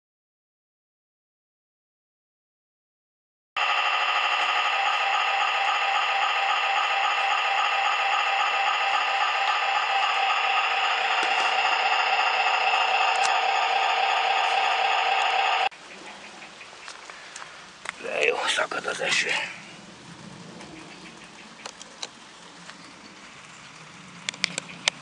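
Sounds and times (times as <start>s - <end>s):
hiss: 3.6s - 15.7s
model diesel engine chugging: 3.6s - 15.7s.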